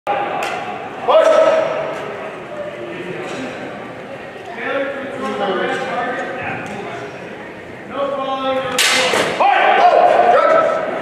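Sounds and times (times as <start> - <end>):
background chatter in echoing hall: 0.1 - 11.0.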